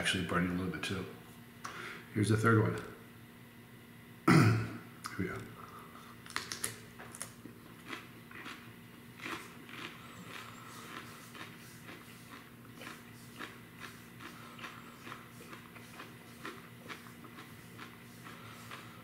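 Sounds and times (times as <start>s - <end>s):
person chewing with wet crunches: 6.1s - 19.0s.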